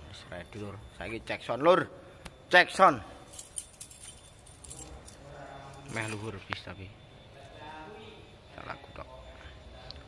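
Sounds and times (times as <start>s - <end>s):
low background noise: 0.0s - 10.0s
light clicks and clinks: 3.3s - 6.5s.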